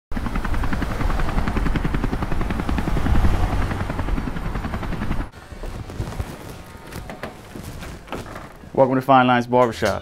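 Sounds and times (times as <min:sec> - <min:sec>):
helicopter rotor chopping: 0:00.1 - 0:08.8.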